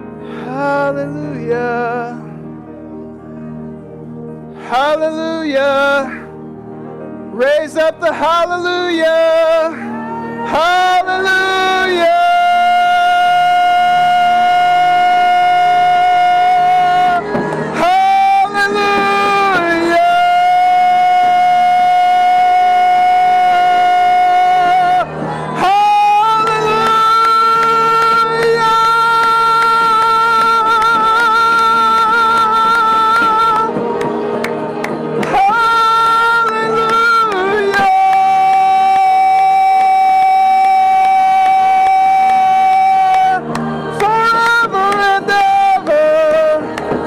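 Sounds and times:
worship band playing: 0:00.0 - 0:47.0.

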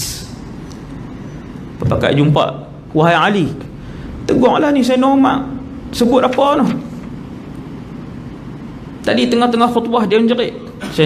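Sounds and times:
hiss: 0:00.0 - 0:00.4
low room rumble: 0:00.0 - 0:11.0.

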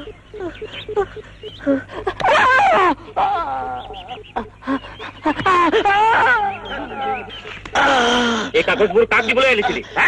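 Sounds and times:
person's wavering cry: 0:00.0 - 0:08.5.

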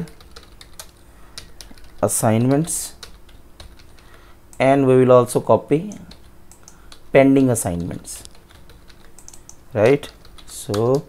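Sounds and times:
computer keyboard typing: 0:00.0 - 0:04.6, 0:05.8 - 0:11.0.

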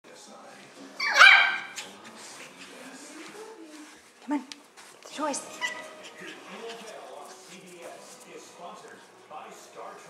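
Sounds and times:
puppy barking: 0:01.0 - 0:02.0.

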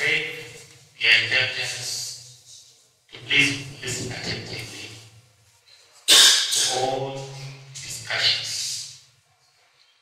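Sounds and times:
man speaking into a microphone: 0:00.0 - 0:05.2, 0:06.1 - 0:09.1.

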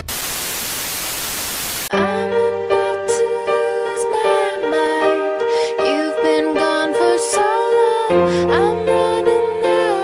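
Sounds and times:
static hiss: 0:00.0 - 0:01.9.

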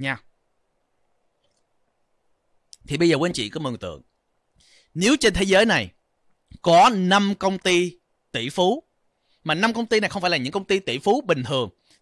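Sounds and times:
faint click: 0:01.4 - 0:01.7.

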